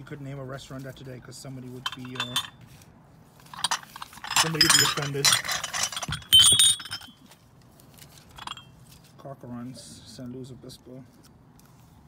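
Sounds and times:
glass ashtrays clinking: 1.8s - 2.6s, 3.6s - 7.3s.

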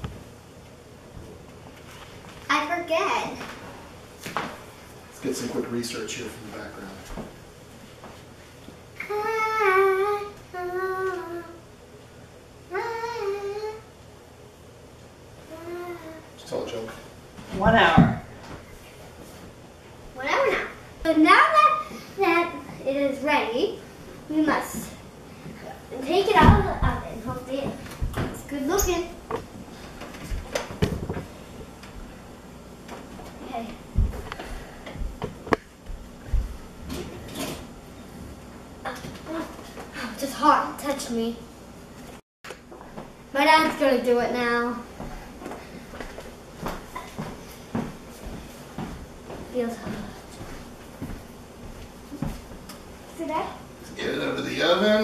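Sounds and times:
girl humming: 9.0s - 11.6s.

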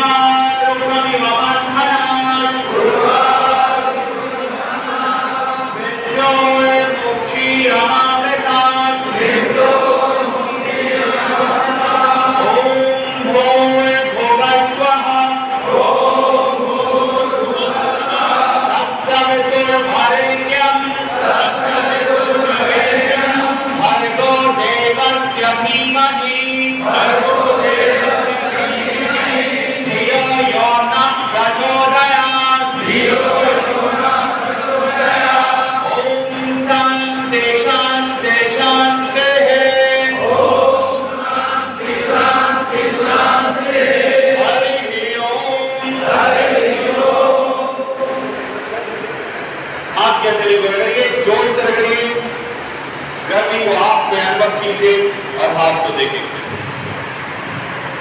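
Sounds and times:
group chanting in unison: 0.0s - 52.0s.

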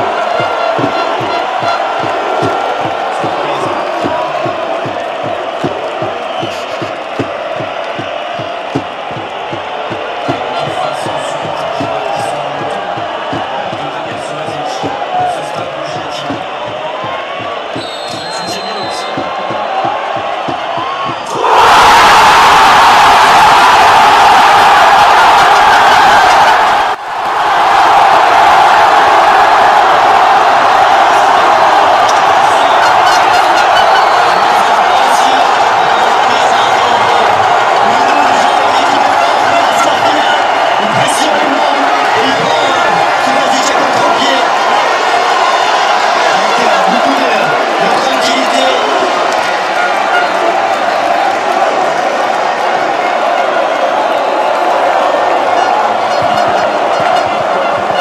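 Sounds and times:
crowd shouting: 0.0s - 58.0s.

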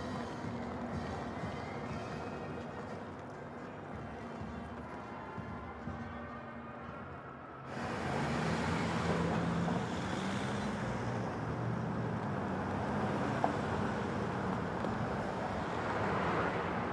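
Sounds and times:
road traffic noise: 0.0s - 5.5s, 6.2s - 16.9s.

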